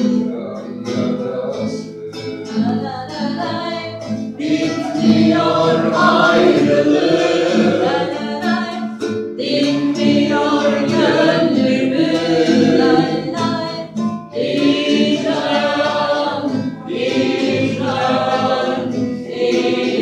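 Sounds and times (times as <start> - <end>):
group of adults singing: 0.0 - 20.0.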